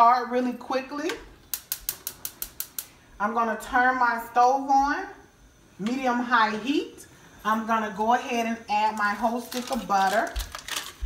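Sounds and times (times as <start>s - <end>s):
gas stove igniter clicking: 1.1s - 3.0s.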